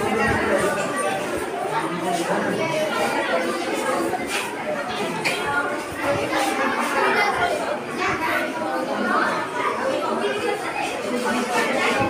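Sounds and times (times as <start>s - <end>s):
hubbub of overlapping voices: 0.0s - 12.0s.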